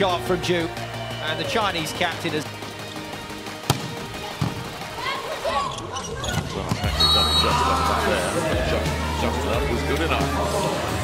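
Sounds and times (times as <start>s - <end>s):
background music: 0.0s - 11.0s
volleyball being struck: 3.6s - 4.6s.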